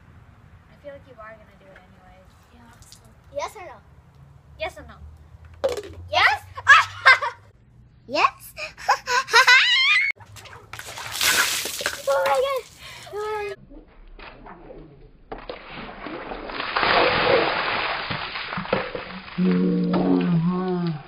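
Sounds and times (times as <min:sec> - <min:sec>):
child laughing: 0:06.4 - 0:07.5, 0:08.5 - 0:10.1
water splashing from bucket: 0:10.2 - 0:13.4, 0:15.3 - 0:21.0.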